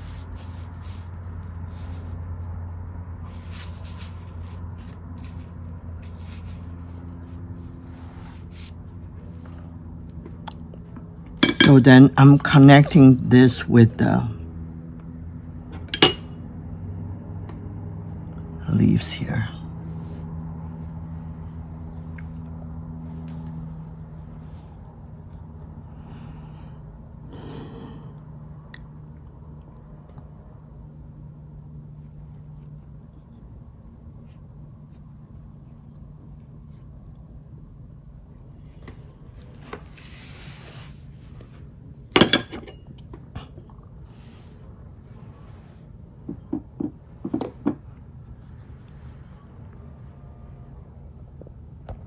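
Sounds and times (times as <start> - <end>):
brush swishing on paper: 0.0 - 9.5, 39.9 - 41.4
low steady hum: 0.0 - 52.0
clink on porcelain dish: 11.4 - 11.8, 15.9 - 16.3.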